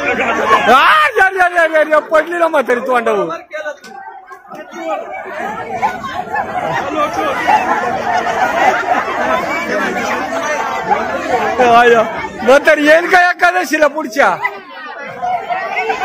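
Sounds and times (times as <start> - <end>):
crowd babble: 0.0 - 16.0.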